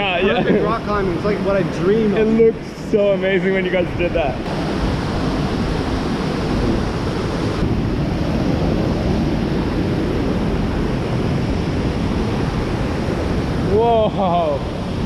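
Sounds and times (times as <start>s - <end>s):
river water rushing over rocks: 4.5s - 10.9s.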